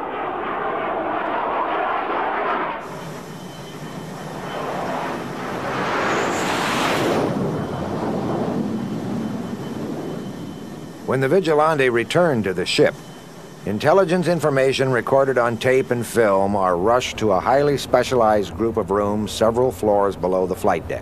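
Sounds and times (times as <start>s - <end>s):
jet aircraft passing: 0.0s - 21.0s.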